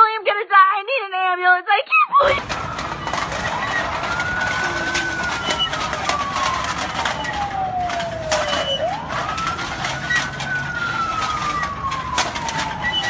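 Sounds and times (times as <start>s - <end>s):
emergency siren wailing: 2.2s - 13.0s.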